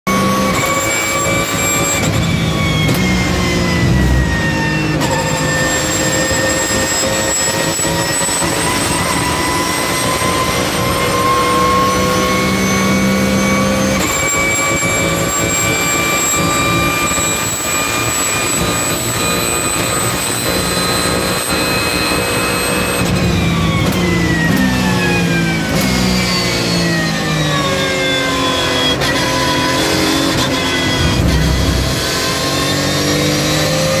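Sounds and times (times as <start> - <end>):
race car engine revving: 0.1 - 34.0.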